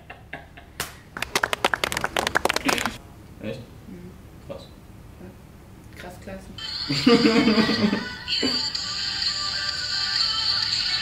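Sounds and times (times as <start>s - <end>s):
people clapping: 0.8s - 3.0s.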